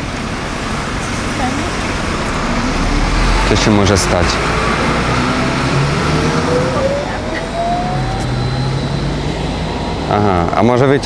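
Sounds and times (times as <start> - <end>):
bus drive whine rising: 0.0 - 11.0
low engine hum: 0.0 - 11.0.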